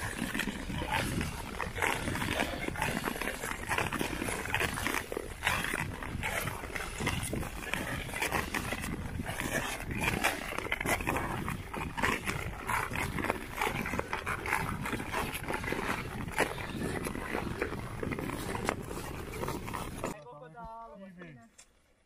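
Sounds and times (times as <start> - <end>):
ice skate blades scraping ice: 0.0 - 20.2.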